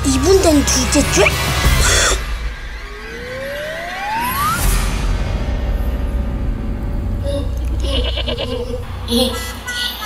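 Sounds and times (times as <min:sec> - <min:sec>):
low rumbling drone: 0:01.5 - 0:09.4.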